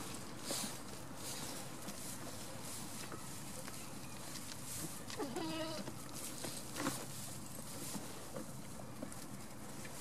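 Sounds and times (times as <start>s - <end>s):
goat bleating: 5.2s - 5.9s.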